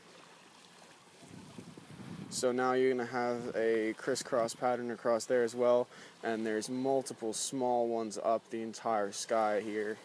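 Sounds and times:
faint outdoor hiss: 0.0s - 10.0s
wind on microphone: 1.2s - 4.8s.

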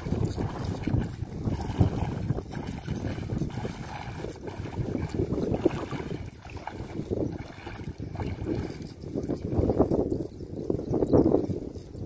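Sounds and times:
water sloshing around wading legs: 0.0s - 10.3s.

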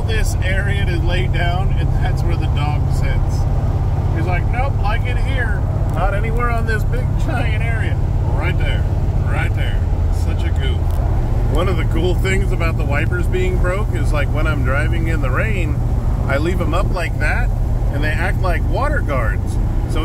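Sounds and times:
car engine and road drone: 0.0s - 20.0s.

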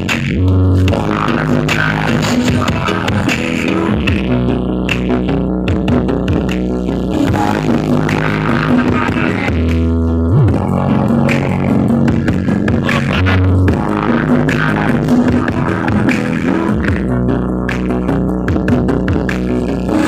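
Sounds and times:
deep bass notes: 0.0s - 20.0s
loud electronic dance music: 0.0s - 20.0s.

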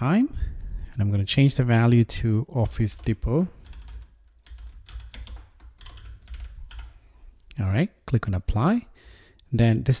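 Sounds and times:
computer keyboard typing: 2.7s - 7.1s.

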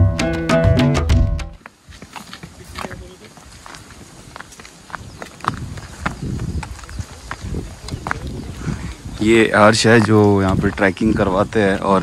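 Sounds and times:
footsteps on rock: 1.6s - 12.0s.

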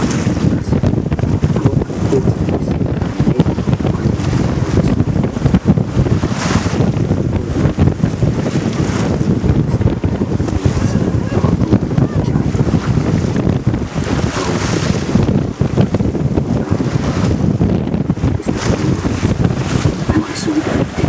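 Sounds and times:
steady low rumble: 0.0s - 21.0s
water rushing along hull: 0.0s - 21.0s
wind buffeting microphone: 0.0s - 21.0s.

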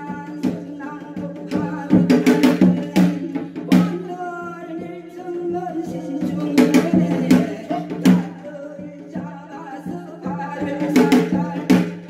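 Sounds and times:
person singing long wavering notes: 0.0s - 11.6s
drumming: 0.0s - 12.0s.

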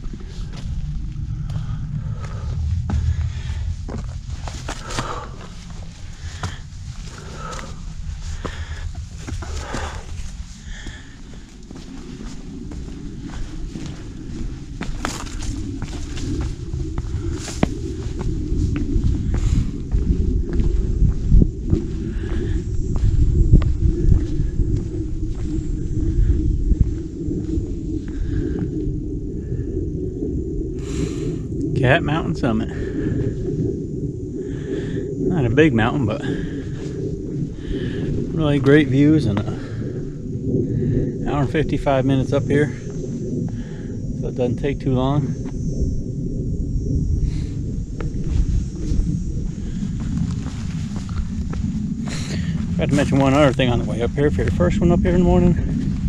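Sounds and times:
footsteps on rocky trail: 0.0s - 26.0s, 48.2s - 54.6s
wind rumble on microphone: 0.0s - 56.0s.

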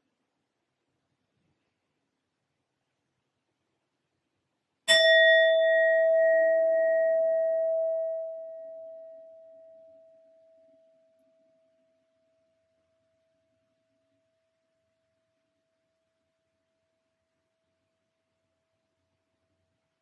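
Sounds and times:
singing bowl ringing: 4.9s - 11.0s.

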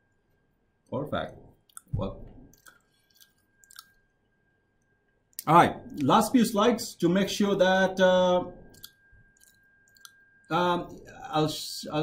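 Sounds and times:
faint steady high tone: 0.0s - 12.0s.

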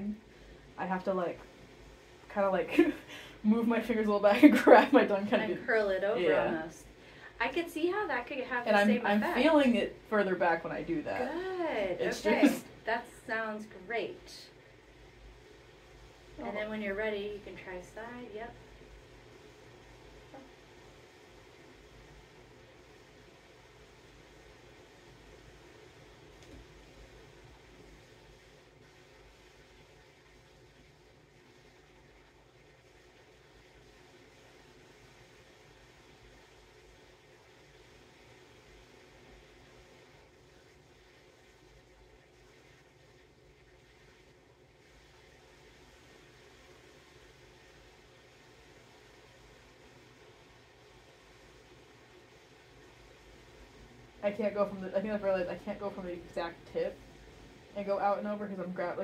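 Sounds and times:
faint hiss: 0.0s - 59.0s.

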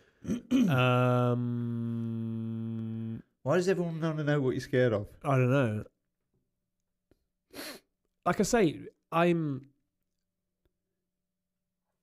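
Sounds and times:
breathy vocal sound: 0.0s - 3.4s.

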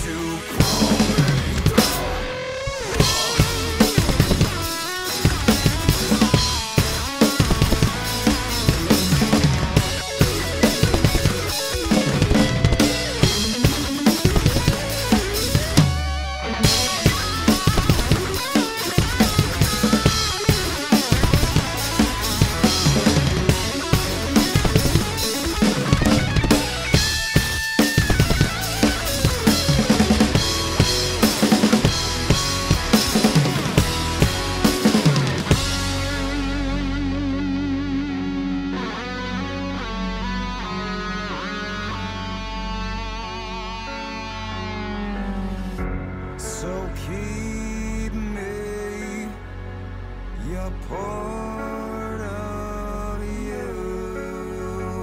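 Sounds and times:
recorded backing music: 0.0s - 55.0s
bass drum strikes: 0.6s - 2.3s, 3.0s - 16.0s, 16.6s - 36.6s.

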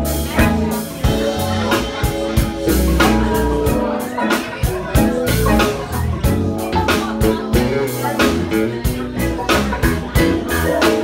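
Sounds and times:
drum kit: 0.0s - 11.0s
electric bass: 0.0s - 11.0s
electric guitar: 0.0s - 11.0s.

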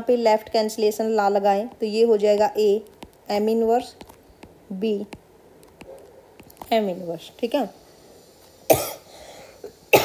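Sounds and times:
person coughing: 8.7s - 9.1s.

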